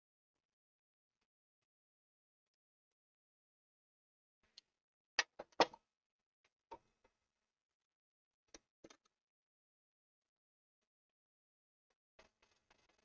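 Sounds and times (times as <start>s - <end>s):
clicks and knocks of small parts: 4.5s - 5.8s, 8.5s - 9.1s.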